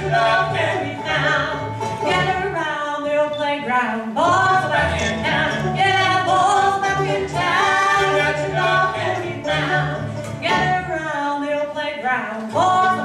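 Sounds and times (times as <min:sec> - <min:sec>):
upright bass notes: 0:00.0 - 0:02.6, 0:04.2 - 0:11.0
bluegrass band playing: 0:00.0 - 0:13.0.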